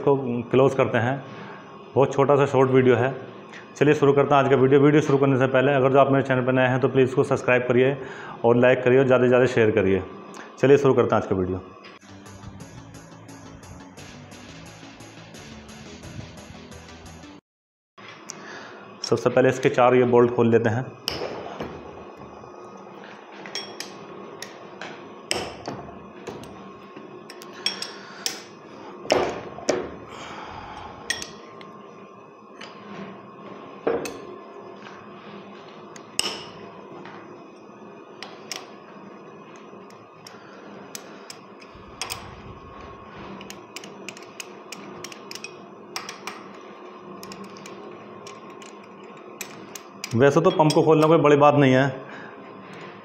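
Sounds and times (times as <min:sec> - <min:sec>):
faint steady hum: 0:00.0 - 0:14.2, 0:18.0 - 0:53.0.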